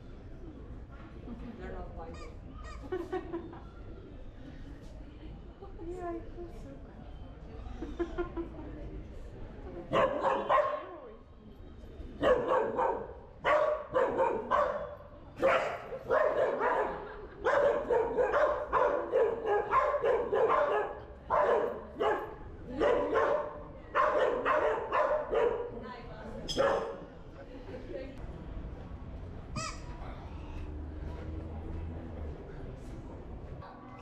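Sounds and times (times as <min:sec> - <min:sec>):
dog barking: 0:09.9 - 0:10.9, 0:12.2 - 0:25.8, 0:26.5 - 0:27.0.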